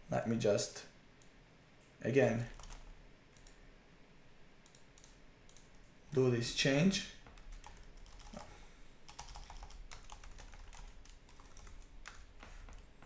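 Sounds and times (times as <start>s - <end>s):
typing on computer keyboard: 2.5s - 3.6s, 4.6s - 5.8s, 7.3s - 8.5s, 9.1s - 12.9s.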